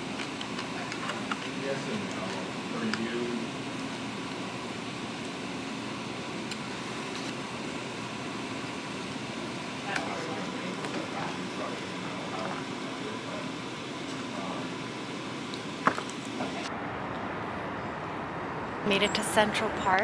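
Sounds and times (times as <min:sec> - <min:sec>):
office room noise: 0:00.0 - 0:20.0
faint voices: 0:00.6 - 0:03.8, 0:09.7 - 0:15.2.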